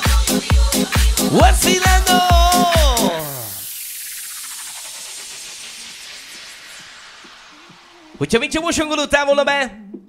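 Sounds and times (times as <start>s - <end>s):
dance track pitch drop: 1.2s - 8.0s
white-noise sweep: 1.2s - 8.4s.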